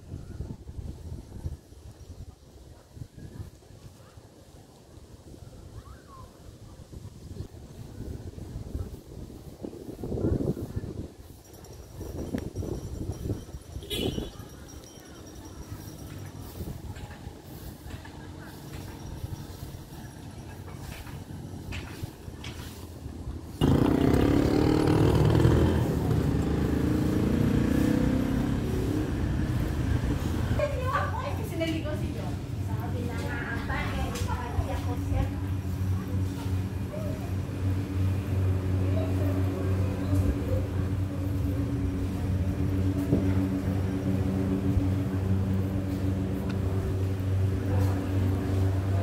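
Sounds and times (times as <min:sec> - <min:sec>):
vehicle engine low rumble: 0:06.9 - 0:49.0.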